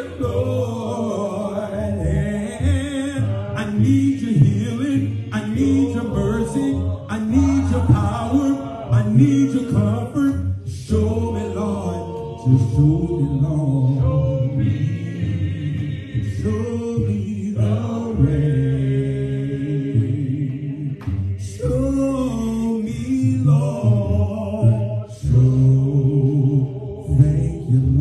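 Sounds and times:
man singing through microphone: 0.0 - 14.6
voices singing: 0.0 - 28.0.

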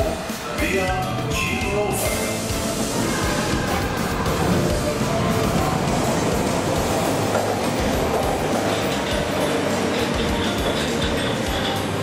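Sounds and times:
subway train at platform: 0.0 - 12.0.

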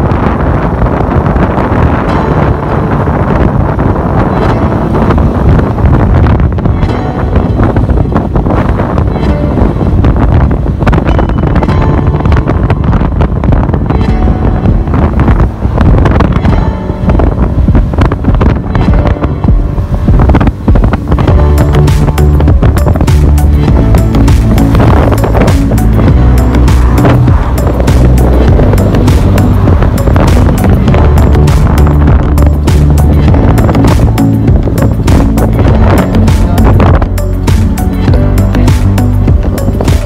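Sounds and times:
background music: 0.0 - 40.0
wind buffeting microphone: 0.0 - 40.0.

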